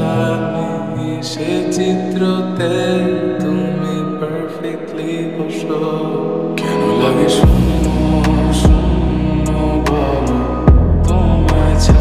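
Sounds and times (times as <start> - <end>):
person singing with reverb: 0.0 - 12.0
slow soft lofi beat: 6.5 - 12.0.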